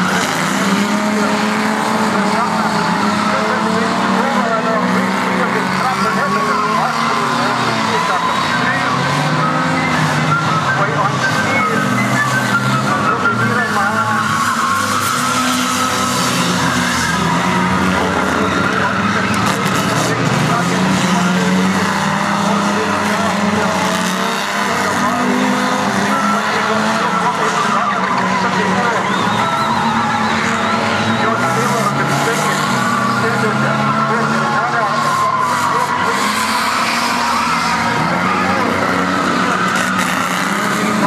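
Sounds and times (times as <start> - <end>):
race car engines revving: 0.0 - 41.0
tyres skidding: 0.0 - 41.0.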